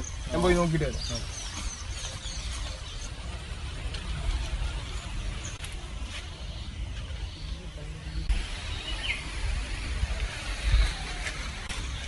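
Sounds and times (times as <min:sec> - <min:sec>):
bird chirp: 0:00.0 - 0:12.0
faint high hiss: 0:06.1 - 0:12.0.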